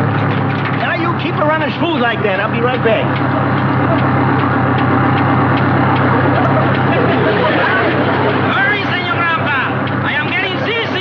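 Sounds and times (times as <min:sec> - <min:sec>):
car engine idling with ticking: 0:00.0 - 0:11.0.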